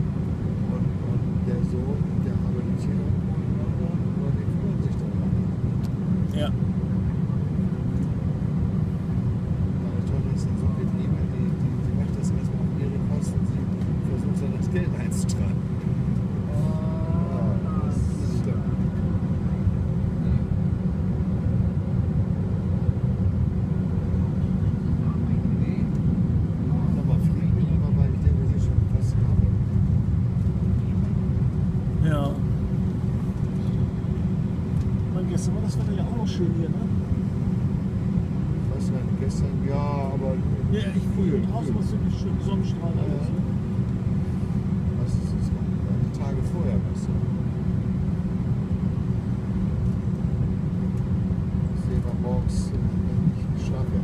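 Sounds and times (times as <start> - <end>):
airliner cabin low rumble: 0.0 - 54.0.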